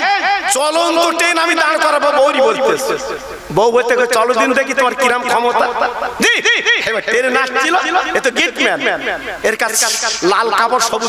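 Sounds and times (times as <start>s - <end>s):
man preaching into a microphone: 0.0s - 11.0s.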